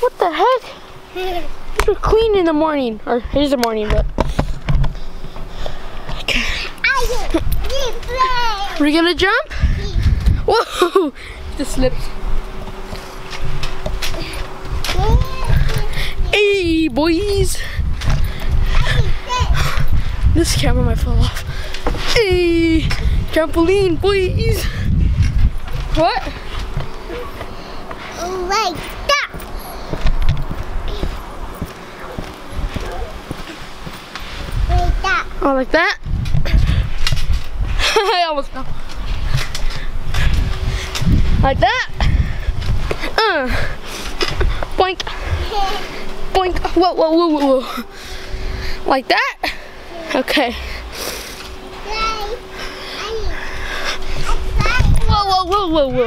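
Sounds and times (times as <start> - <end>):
wind on microphone: 9.4 - 10.6, 11.3 - 27.4, 32.5 - 35.4, 36.0 - 37.9, 38.6 - 46.8, 54.0 - 56.0.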